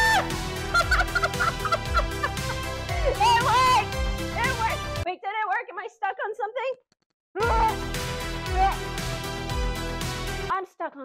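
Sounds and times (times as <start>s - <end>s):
woman screaming excitedly: 0.0s - 0.4s, 3.0s - 3.9s.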